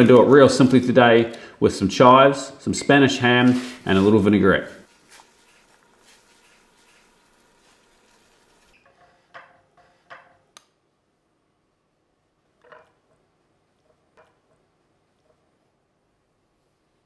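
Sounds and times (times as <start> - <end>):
boiling water hiss: 3.5 - 8.8.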